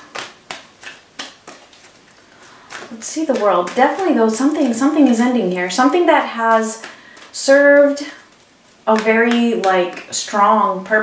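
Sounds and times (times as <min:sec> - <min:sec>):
cards clicking: 0:00.0 - 0:05.1, 0:06.5 - 0:07.4.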